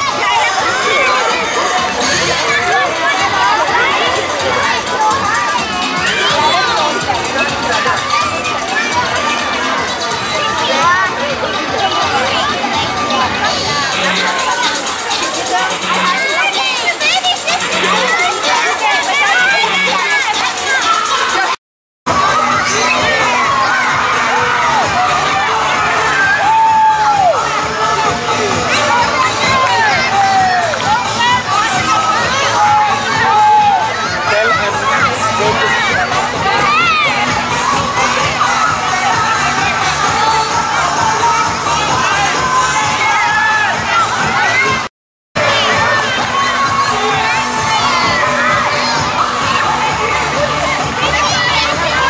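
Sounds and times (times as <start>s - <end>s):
children shouting and cheering: 0.0s - 52.0s.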